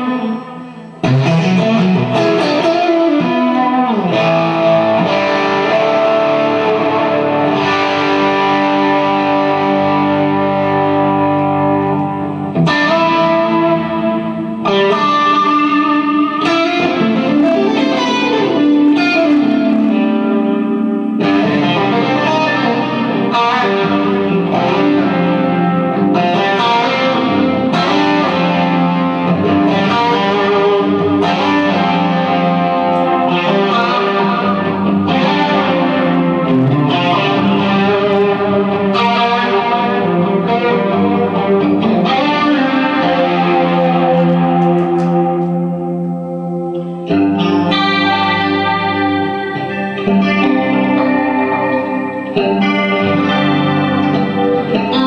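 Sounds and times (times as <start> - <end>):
electric guitar chords with effects: 0.0 - 55.0.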